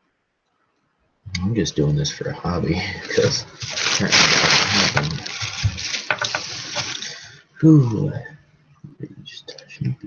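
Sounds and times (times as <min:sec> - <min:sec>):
plastic bag rustling: 0:03.0 - 0:07.2.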